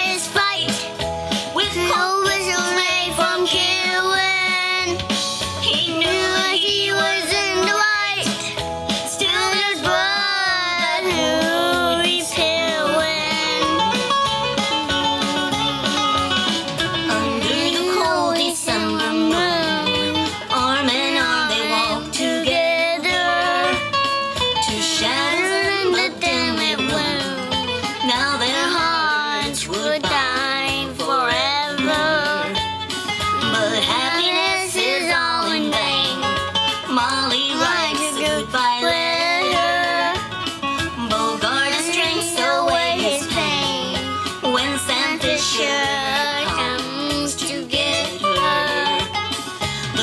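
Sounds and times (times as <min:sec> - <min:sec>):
boy singing into a microphone: 0:00.0 - 0:14.1, 0:14.8 - 0:32.6, 0:33.3 - 0:40.3, 0:41.0 - 0:50.0
instrumental accompaniment: 0:00.0 - 0:50.0.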